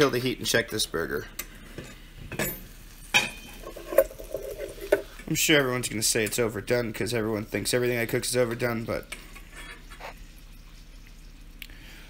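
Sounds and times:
burger sizzling in frying pan: 1.6 - 5.6, 9.0 - 11.6
metal pan lid clanking: 2.3 - 5.0.

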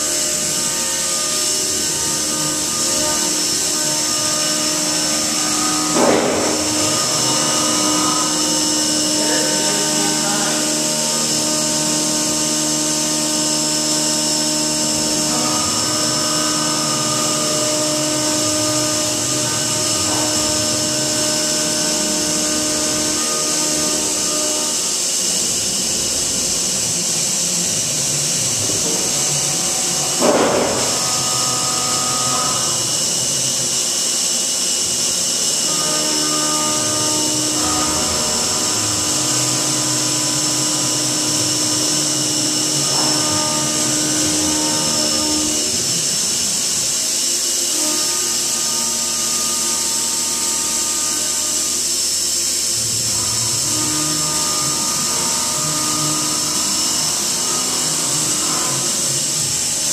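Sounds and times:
coolant spray hiss: 0.0 - 59.9
milling machine cutting whine: 0.0 - 59.9.

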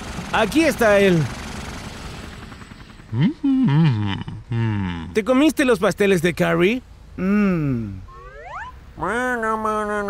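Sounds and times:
cartoon character humming: 3.1 - 5.1, 7.2 - 10.0.

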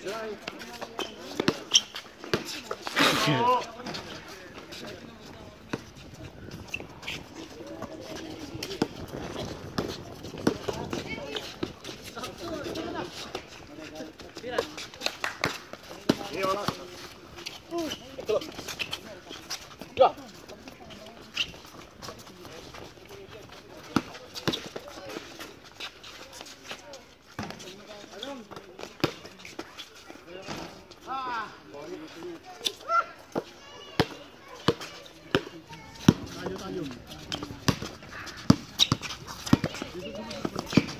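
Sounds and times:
basketball bouncing on concrete: 0.4 - 2.8, 7.7 - 13.4, 15.4 - 16.9, 27.4 - 27.6, 33.3 - 40.9.

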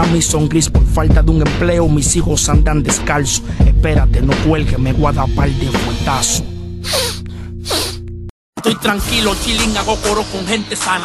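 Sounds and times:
rapping over a beat: 0.0 - 6.5, 8.6 - 11.0.

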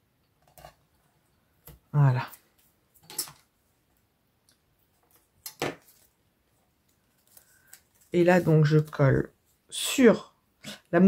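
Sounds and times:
soft tape rustle: 0.2 - 9.8.

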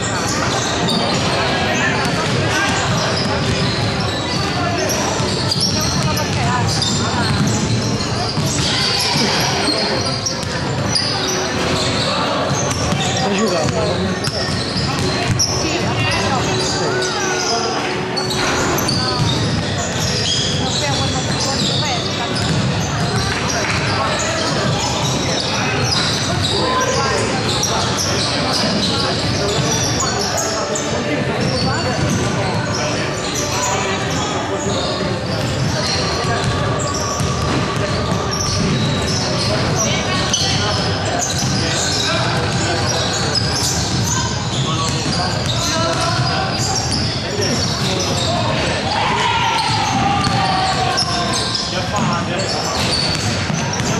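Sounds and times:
players chattering and calling: 0.0 - 53.9
basketballs bouncing on wooden floor: 5.1 - 9.3, 20.8 - 23.9, 49.9 - 51.1.

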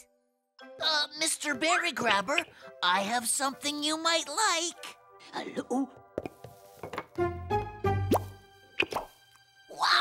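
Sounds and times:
light background music: 0.0 - 10.0.

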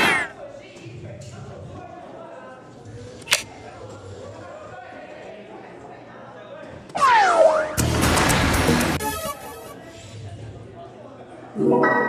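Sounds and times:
faint murmur of voices: 0.0 - 7.8, 9.1 - 12.0.

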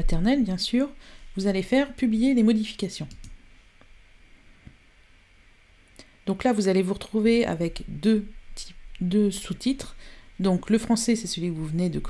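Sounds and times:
faint mouse clicks: 3.1 - 3.9.

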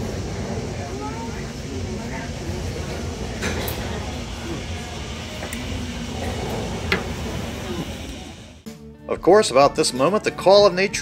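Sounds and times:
faint conversation of diners: 0.0 - 8.6
steady background hum: 0.0 - 8.6.

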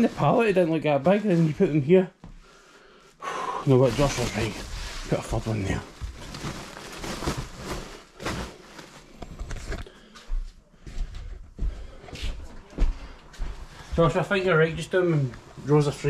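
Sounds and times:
sacks thudding and rustling: 3.7 - 9.8.

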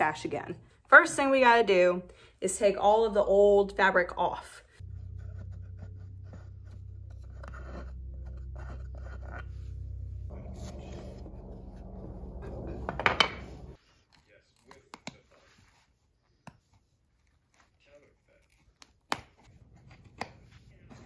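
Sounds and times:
steady low hum: 4.8 - 13.8.

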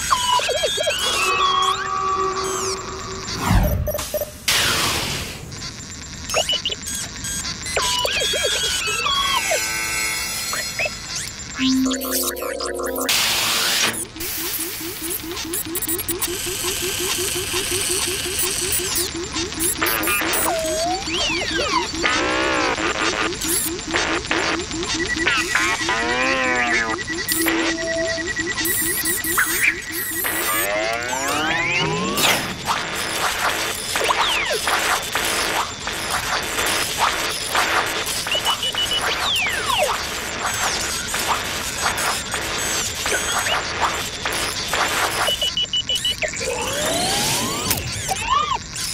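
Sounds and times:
electronic bleeps and warbling tones: 0.0 - 4.7, 6.3 - 6.9, 10.6 - 34.7, 45.0 - 48.7
music track: 11.6 - 13.1.

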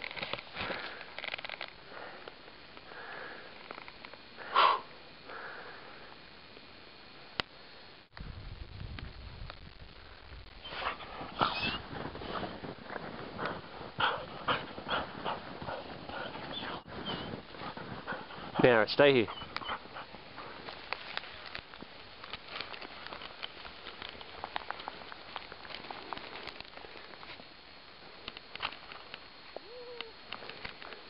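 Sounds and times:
dog whining: 10.6 - 11.8, 16.4 - 17.3, 19.3 - 19.8
dog panting: 13.4 - 18.6, 19.3 - 20.6.

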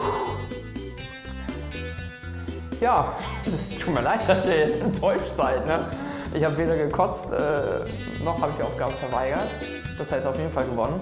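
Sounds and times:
background music with bass line: 0.0 - 11.0
man speaking: 2.8 - 11.0.

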